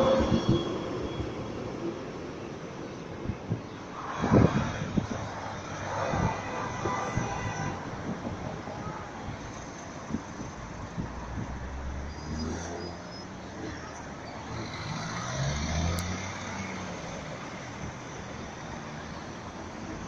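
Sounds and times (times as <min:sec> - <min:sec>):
road noise hum: 0:00.0 - 0:20.0
vehicles passing close by: 0:00.0 - 0:20.0.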